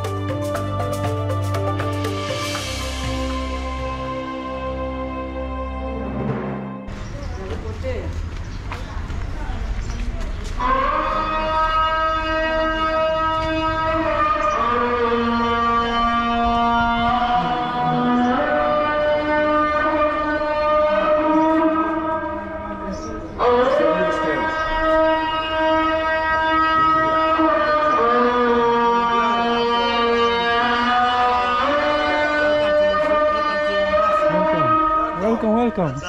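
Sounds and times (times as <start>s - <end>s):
call to prayer over loudspeaker: 7.2s - 36.0s.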